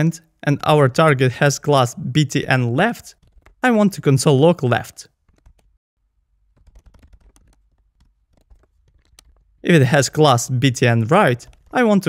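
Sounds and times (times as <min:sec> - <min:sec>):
computer keyboard typing: 0:03.2 - 0:03.6, 0:05.1 - 0:05.8, 0:06.5 - 0:09.6, 0:11.3 - 0:11.8.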